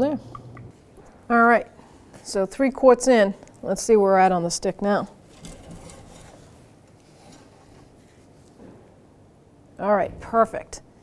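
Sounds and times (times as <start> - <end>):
dipstick rubbing and handling: 5.4 - 8.6.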